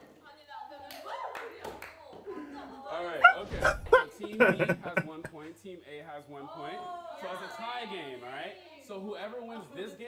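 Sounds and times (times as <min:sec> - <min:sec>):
people talking and chuckling: 0:02.2 - 0:05.6.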